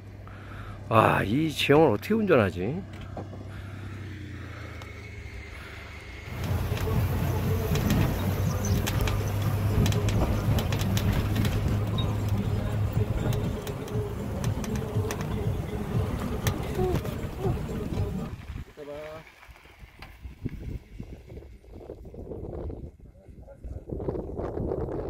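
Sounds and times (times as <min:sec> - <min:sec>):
clicks and rattles: 0:06.3 - 0:15.4
wind rushing over microphone: 0:19.8 - 0:25.0.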